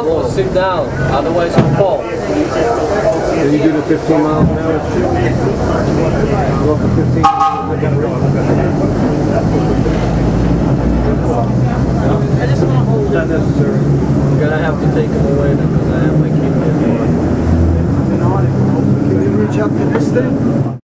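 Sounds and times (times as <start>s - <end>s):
indistinct chatter: 0.0s - 20.8s.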